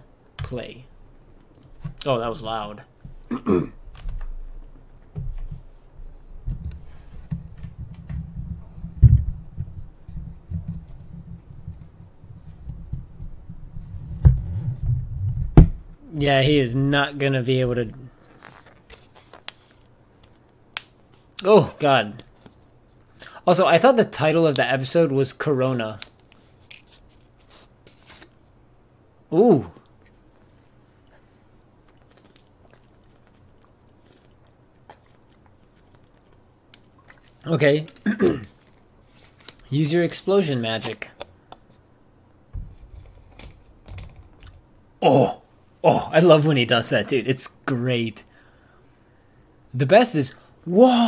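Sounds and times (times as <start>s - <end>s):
low room rumble: 0.0s - 51.0s.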